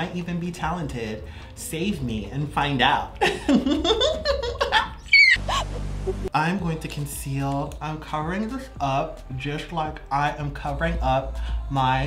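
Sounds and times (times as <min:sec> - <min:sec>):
person laughing: 0:03.2 - 0:06.3
high squeal falling in pitch: 0:05.1 - 0:05.8
low steady drone: 0:05.4 - 0:06.3.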